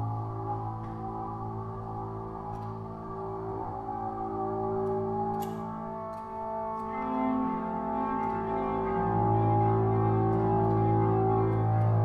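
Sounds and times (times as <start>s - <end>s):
ambient drone music: 0.0s - 12.0s.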